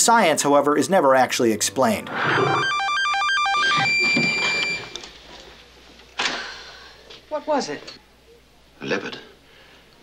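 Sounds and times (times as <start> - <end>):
electronic warbling beeps: 2.0 - 4.9.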